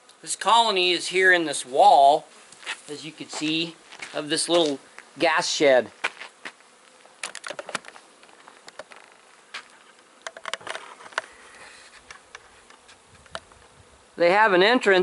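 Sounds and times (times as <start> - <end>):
honeybees buzzing: 0.0 - 15.0.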